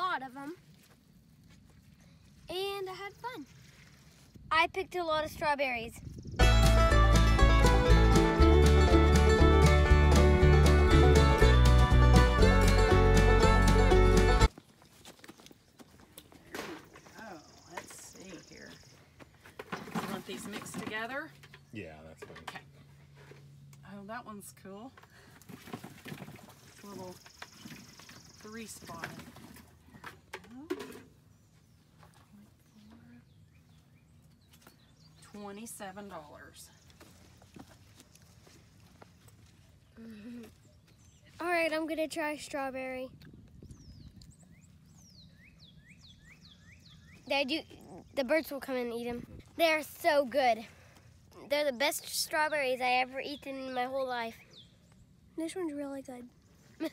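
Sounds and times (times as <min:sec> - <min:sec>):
bird song whistled notes: 0:43.6 - 0:47.3.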